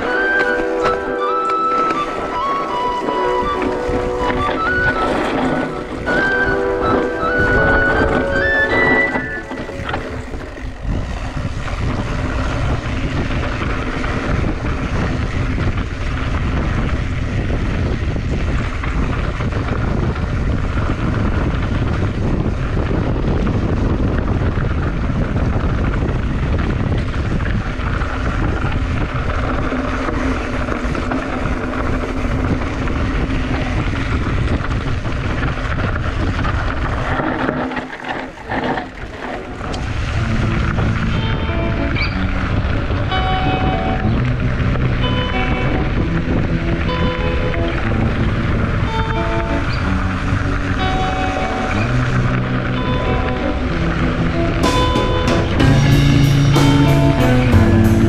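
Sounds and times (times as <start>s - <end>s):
bike tyres on loose stones: 0.0s - 58.0s
wind buffeting microphone: 0.0s - 58.0s.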